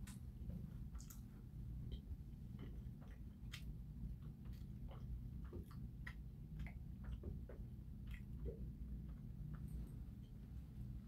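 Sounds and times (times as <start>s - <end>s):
low room hum: 0.0s - 11.0s
chewing: 0.8s - 10.4s.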